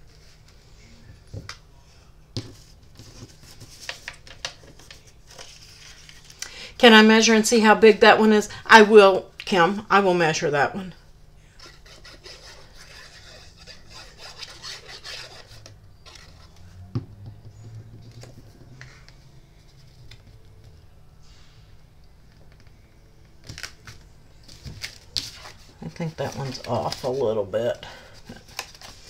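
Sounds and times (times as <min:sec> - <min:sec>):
hands rubbing cardstock: 0:11.6 - 0:16.6.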